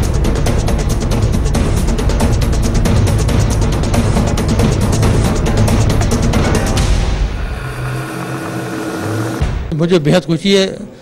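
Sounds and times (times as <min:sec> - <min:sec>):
whooshing drone: 0:04.7 - 0:09.7
low hum tones: 0:06.1 - 0:09.7.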